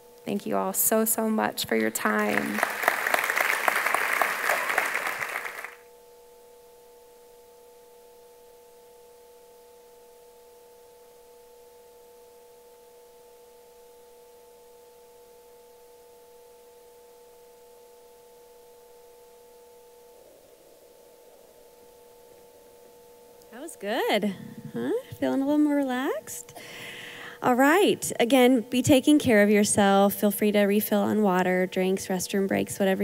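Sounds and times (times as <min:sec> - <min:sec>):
drone of held pure tones: 0:00.0 - 0:33.0
audience applause: 0:02.0 - 0:05.8.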